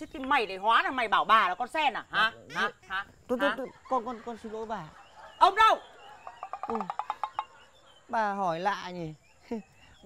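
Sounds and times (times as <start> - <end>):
insect chirping: 0.0 - 10.0.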